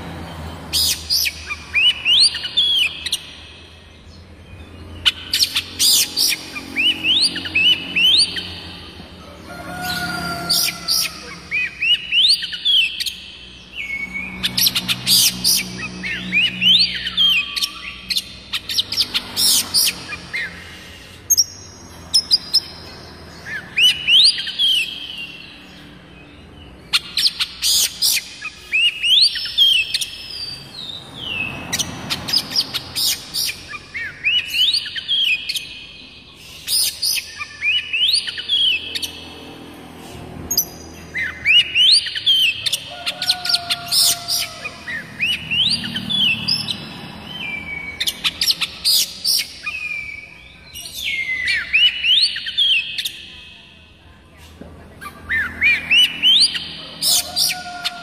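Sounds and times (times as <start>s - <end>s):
bird whistled song: 0.7s - 8.6s, 10.6s - 22.8s, 26.9s - 39.2s, 40.5s - 53.6s.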